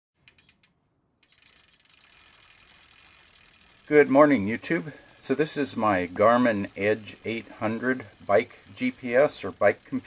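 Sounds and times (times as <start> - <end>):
rapid mechanical clicking: 0.2 - 10.0.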